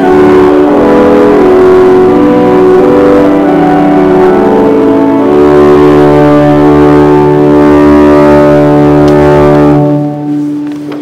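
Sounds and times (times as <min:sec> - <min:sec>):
church organ sustained chord: 0:00.0 - 0:11.0.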